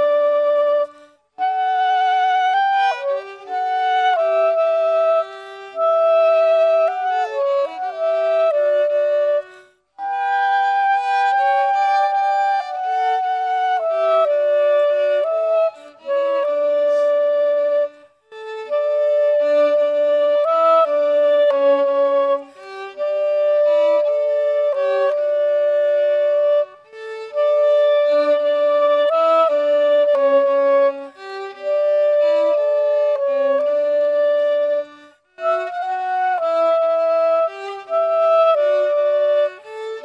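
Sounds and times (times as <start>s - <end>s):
violin and clarinet duet: 0.0s - 40.0s.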